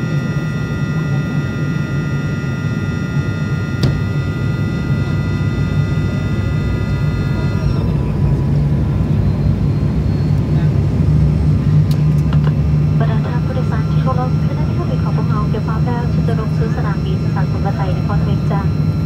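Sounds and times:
airliner cabin drone: 0:00.0 - 0:19.0
voice over cabin loudspeaker: 0:12.9 - 0:18.8.

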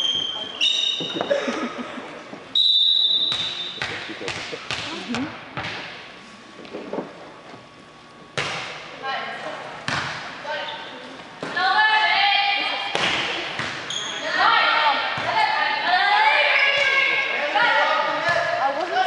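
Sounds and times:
referee's whistle blast: 0:02.6 - 0:03.8.

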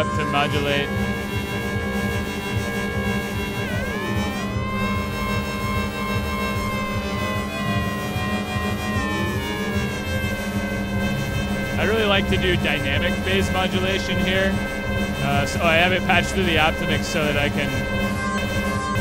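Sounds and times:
steady low hum: 0:00.0 - 0:19.0
sustained layered synth tones: 0:00.0 - 0:19.0
synth pitch sweeps: 0:00.0 - 0:19.0.

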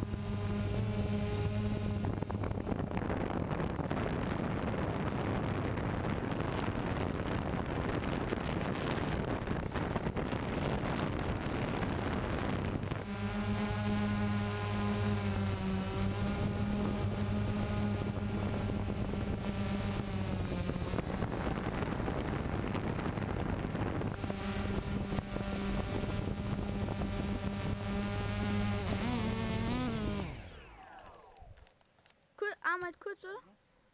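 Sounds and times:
drone propellers buzzing: 0:00.0 - 0:31.7.

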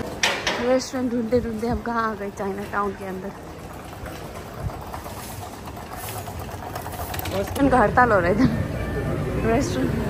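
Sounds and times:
street rumble with rattle: 0:00.0 - 0:10.0.

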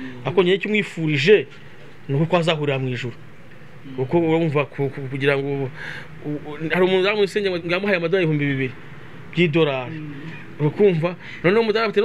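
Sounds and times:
man talking: 0:10.6 - 0:12.0.

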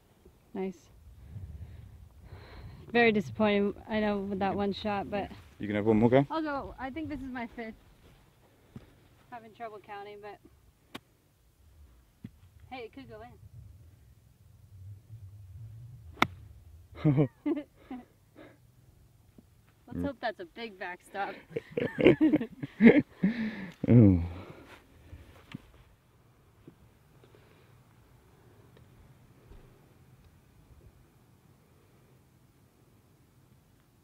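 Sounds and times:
faint low rumble: 0:00.0 - 0:34.0
golf club striking ball: 0:16.1 - 0:16.5.

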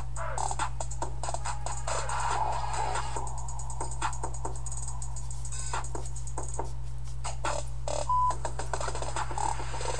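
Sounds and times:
low electrical hum: 0:00.0 - 0:09.9.

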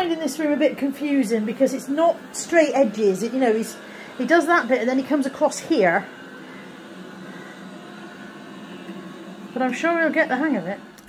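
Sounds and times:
robot vacuum running on carpet: 0:00.0 - 0:11.0.

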